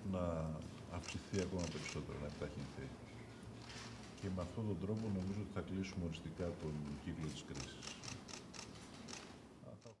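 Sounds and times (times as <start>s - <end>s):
camera shutters clicking: 7.6s - 9.4s.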